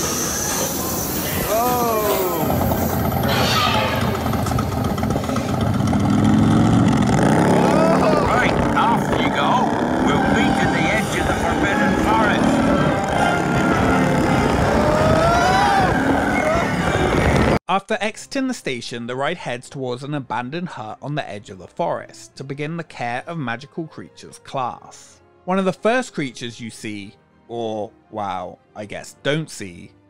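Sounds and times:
people's voices: 0.0 - 5.9, 7.4 - 17.5
motorbike engine sound effect: 0.0 - 17.6.

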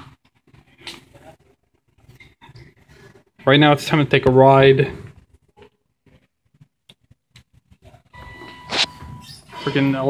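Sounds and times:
elevator electronic tone: 8.2 - 10.0
short sharp sound: 8.6 - 9.0.

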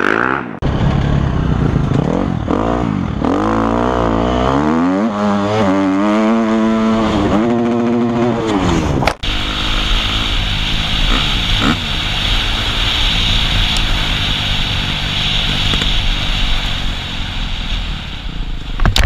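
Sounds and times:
dirt bike engine revving: 0.0 - 17.5
rushing wind: 4.6 - 19.0.

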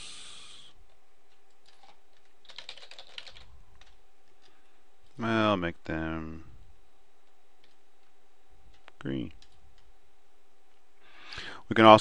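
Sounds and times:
computer keyboard typing: 1.3 - 4.6, 7.2 - 9.9.

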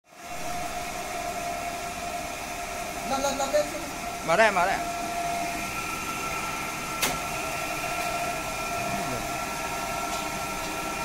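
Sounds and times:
electric motor hum and whine: 0.1 - 11.0.

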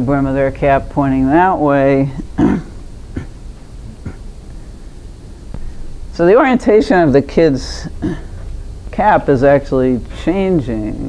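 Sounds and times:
woman coughing: 2.2 - 3.4, 8.0 - 8.4
throat sound: 2.2 - 4.3, 7.9 - 8.4.

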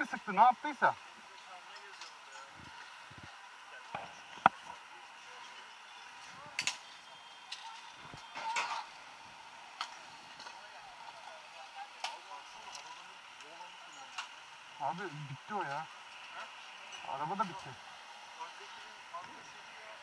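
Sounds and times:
faint voices of bystanders: 0.0 - 20.0
street traffic hum: 0.0 - 20.0.

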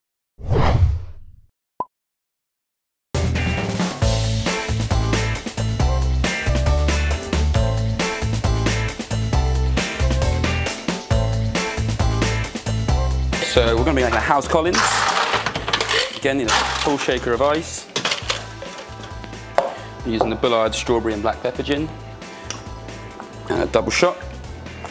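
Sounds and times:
ice clattering in metal shaker: 14.1 - 19.1.

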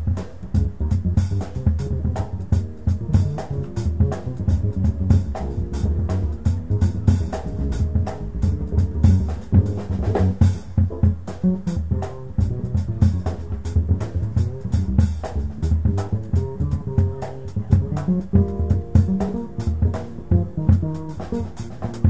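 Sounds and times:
drum kit and cymbals: 0.0 - 22.0
electric piano chords: 0.0 - 22.0
plucked upright bass: 0.0 - 22.0.

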